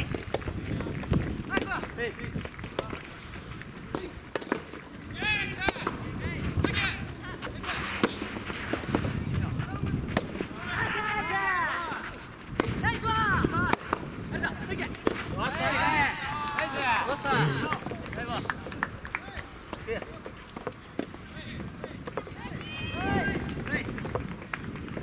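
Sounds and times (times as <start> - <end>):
rackets striking soft ball: 0.0 - 15.6, 17.8 - 22.7, 23.4 - 25.0
voices shouting: 10.6 - 12.2.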